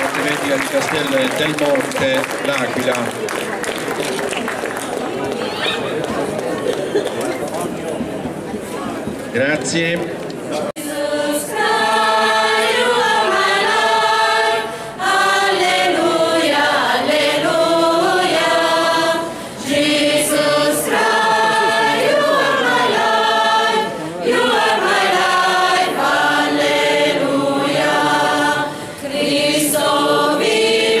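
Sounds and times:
mixed choir singing: 10.7s - 31.0s.

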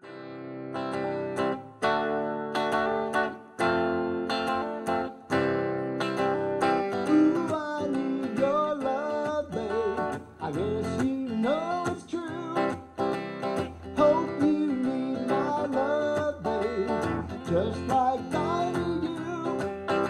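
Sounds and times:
electric guitar strumming: 0.0s - 20.0s
person singing wordless melody: 6.9s - 20.0s.

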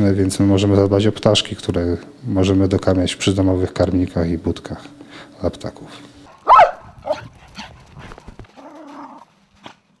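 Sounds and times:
dog barking: 6.3s - 7.3s.

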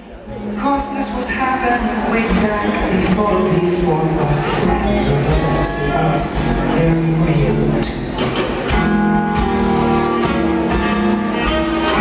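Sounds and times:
jazz-pop band playing: 0.0s - 12.0s.

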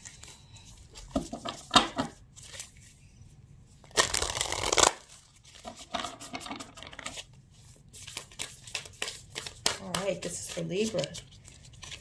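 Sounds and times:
cards being shuffled: 3.8s - 7.3s, 7.9s - 12.0s.

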